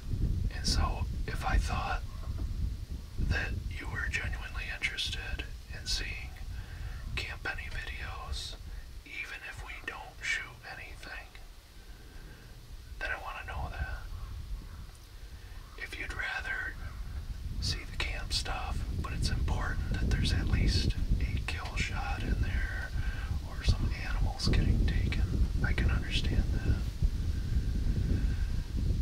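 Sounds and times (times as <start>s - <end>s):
low rumble: 0.0s - 29.0s
man whispering: 0.5s - 2.1s, 3.2s - 11.7s, 13.0s - 14.4s, 15.3s - 27.0s.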